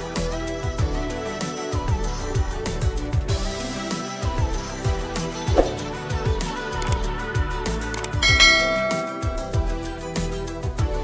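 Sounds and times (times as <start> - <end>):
background music with steady beat: 0.0 - 11.0
bright bell chime: 8.2 - 10.0.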